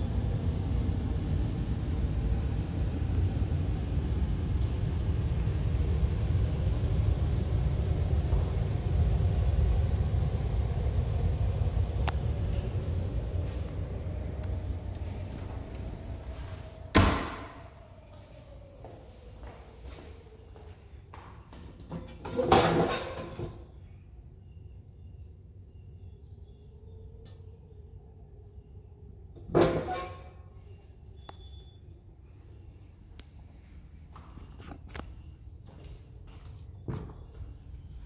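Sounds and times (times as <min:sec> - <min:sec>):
steady low rumble: 0:00.0 - 0:38.0
footsteps walking: 0:13.4 - 0:13.8, 0:18.1 - 0:22.1, 0:33.6 - 0:37.6
door shutting thud: 0:16.9 - 0:17.6.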